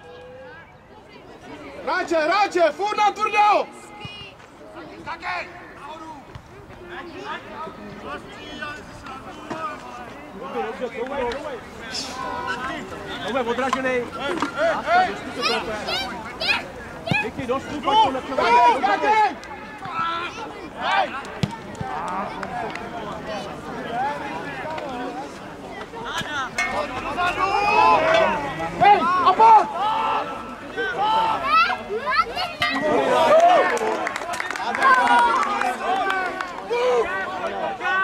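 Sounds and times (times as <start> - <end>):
people shouting outdoors: 1.6 - 4.2, 14.2 - 21.2, 26.0 - 38.0.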